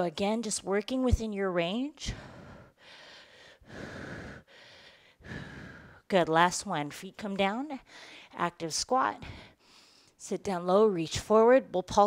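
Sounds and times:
woman breathing hard: 2.0 - 6.1, 7.8 - 8.4, 9.2 - 10.2.

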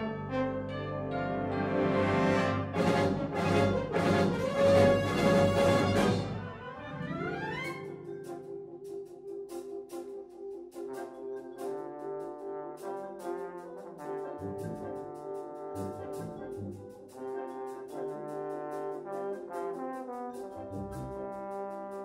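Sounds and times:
solo trombone melody: 0.0 - 8.4, 10.8 - 22.0
military concert band playing: 0.0 - 8.7, 10.8 - 22.0
light ticking percussion: 7.6 - 22.0.

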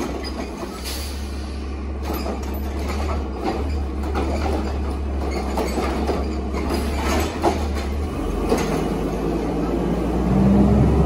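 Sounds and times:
truck engine droning: 0.0 - 11.0.

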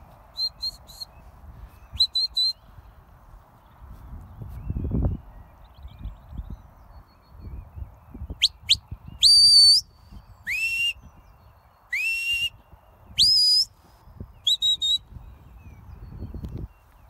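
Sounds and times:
shepherd whistle commands: 1.9 - 2.6, 8.4 - 9.9, 10.5 - 11.0, 11.9 - 12.6, 13.2 - 13.7, 14.5 - 15.1.

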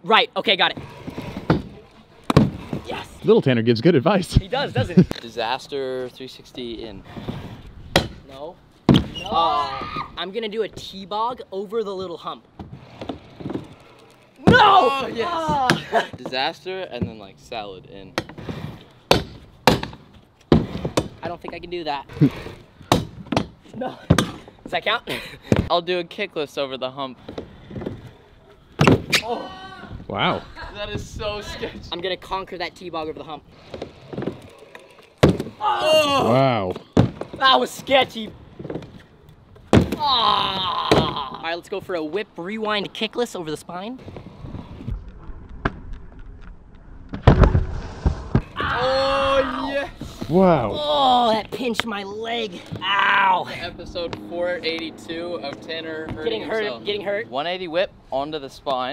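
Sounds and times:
scooter wheels rolling on wooden ramp: 0.4 - 3.4, 4.4 - 25.7, 30.8 - 43.0, 44.0 - 57.7.

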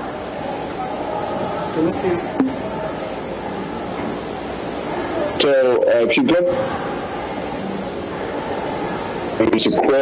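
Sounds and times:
steady hiss of noise: 0.0 - 10.0.

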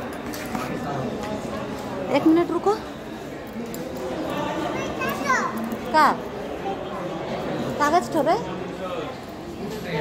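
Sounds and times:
background chatter of voices: 0.0 - 10.0.

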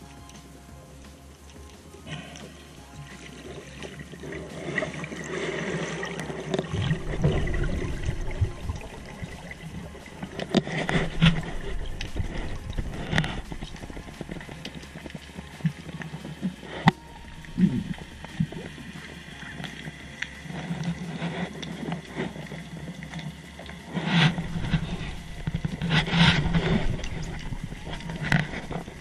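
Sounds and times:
underwater churning rush: 2.0 - 29.0
knocks and splashes: 2.4 - 20.4.

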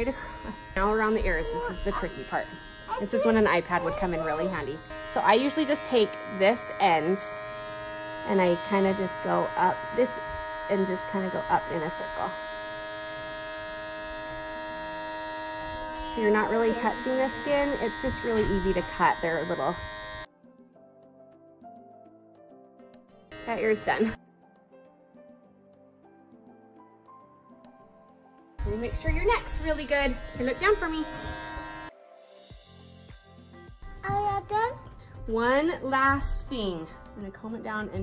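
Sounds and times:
electric hair clippers buzzing: 0.0 - 20.3, 23.3 - 24.2, 28.6 - 32.0
background music: 0.0 - 38.0.

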